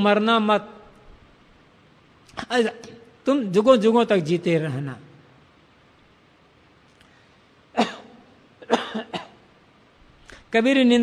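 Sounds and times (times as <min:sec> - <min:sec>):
man coughing: 0:07.7 - 0:09.4.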